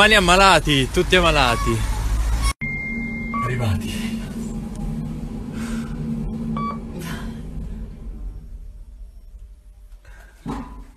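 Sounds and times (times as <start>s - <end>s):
short electronic beep: 2.6s - 3.8s
lift cabin hum: 2.6s - 10.5s.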